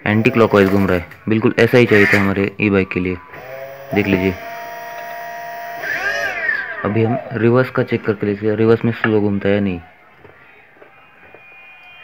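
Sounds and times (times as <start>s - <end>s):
electric motor whine: 0.0s - 1.0s, 3.3s - 7.6s.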